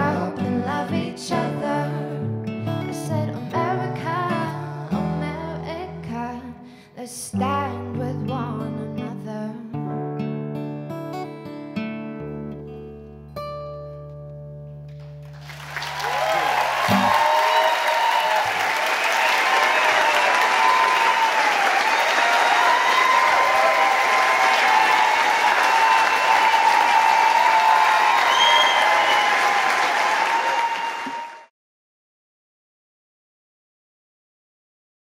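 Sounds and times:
audience applause and cheering: 15.2 - 31.5.

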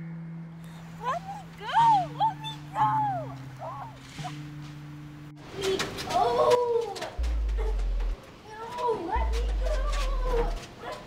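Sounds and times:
woman yelping: 1.0 - 4.0.

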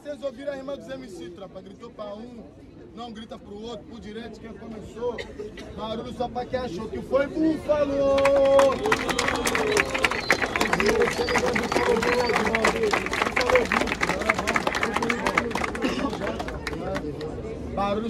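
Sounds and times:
crowd cheering and clapping: 8.2 - 16.8.

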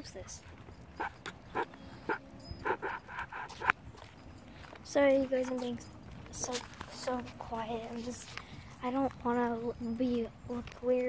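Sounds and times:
dog panting: 0.2 - 4.6
dog whimpering: 1.0 - 3.7.

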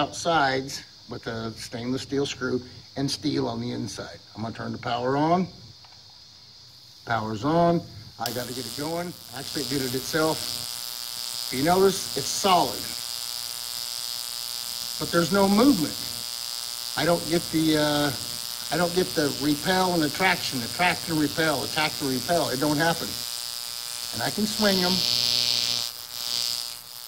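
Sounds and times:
electric arcs buzzing: 0.0 - 0.4, 5.7 - 27.0.

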